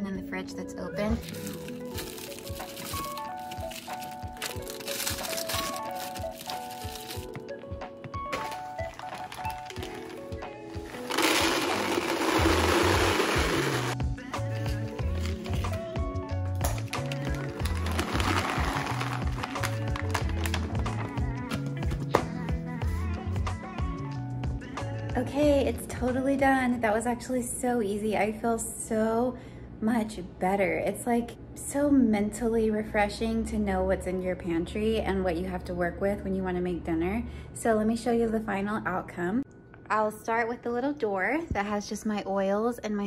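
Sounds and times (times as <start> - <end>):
background music: 0.0 - 28.0
chocolate chips pouring into plastic container: 1.2 - 7.2, 8.4 - 14.0, 16.7 - 20.8.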